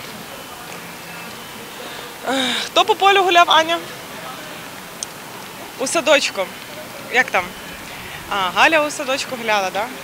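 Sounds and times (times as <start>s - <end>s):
traffic hum: 0.0s - 10.0s
passers-by: 5.1s - 10.0s.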